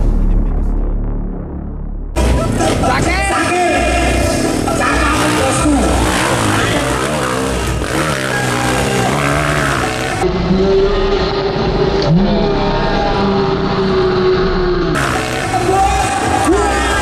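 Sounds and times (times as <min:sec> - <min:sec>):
motorcycle engines revving: 0:02.2 - 0:17.0.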